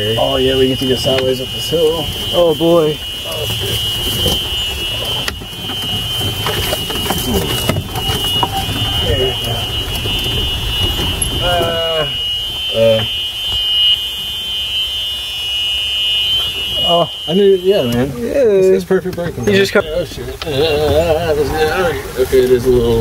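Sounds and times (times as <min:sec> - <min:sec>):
cart rumbling on rough trail: 0:00.0 - 0:14.7, 0:16.2 - 0:23.0
high-pitched warning buzzer: 0:00.0 - 0:18.2.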